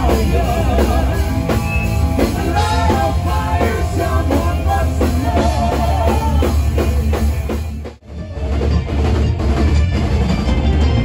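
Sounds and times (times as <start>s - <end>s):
metal band playing: 0.0s - 11.0s
person singing: 2.2s - 6.9s.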